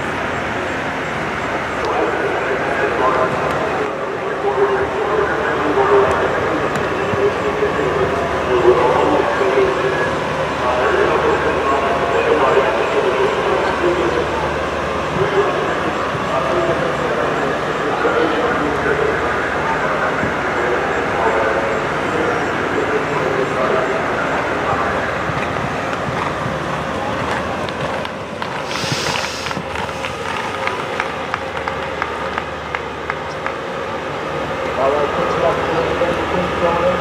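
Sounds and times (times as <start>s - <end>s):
indistinct voices talking: 0.0s - 37.0s
brief hiss: 28.7s - 30.6s.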